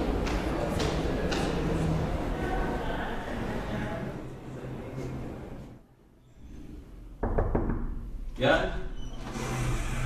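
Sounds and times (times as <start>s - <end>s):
knuckles knocking on door: 7.2s - 8.0s.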